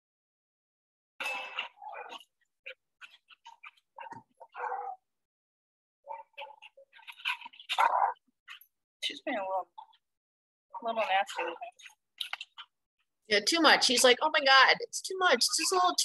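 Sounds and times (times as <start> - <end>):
dogs vocalising during rough play: 1.3 - 5.1, 6.1 - 8.8, 10.8 - 12.9.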